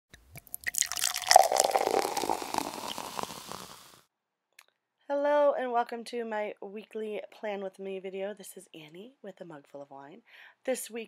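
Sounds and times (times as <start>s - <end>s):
liquid dripping and pouring: 0.2s - 3.9s.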